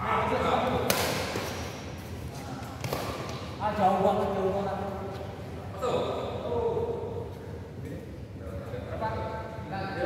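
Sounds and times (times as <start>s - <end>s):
racket striking shuttlecock: 0.8s - 1.8s.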